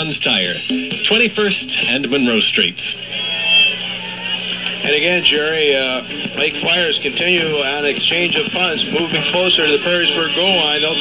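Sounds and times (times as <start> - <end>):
man's voice: 0.0 - 3.0, 4.8 - 11.0
radio broadcast hum: 0.0 - 11.0.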